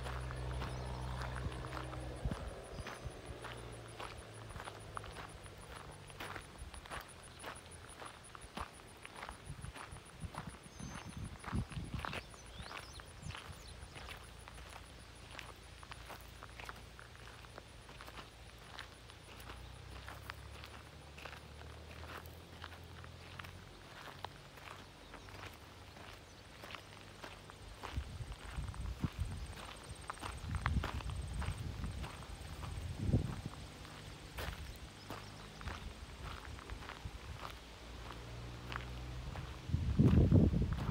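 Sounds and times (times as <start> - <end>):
footsteps on grass: 0.0 - 40.9.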